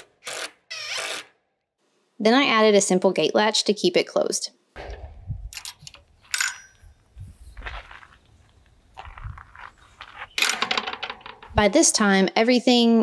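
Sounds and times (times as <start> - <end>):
metallic clinks of gate latch: 4.8 - 6.8, 10.4 - 11.6.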